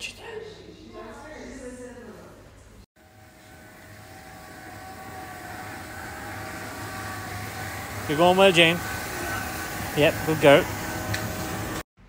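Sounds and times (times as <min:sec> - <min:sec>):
steady hum: 0:03.0 - 0:11.8.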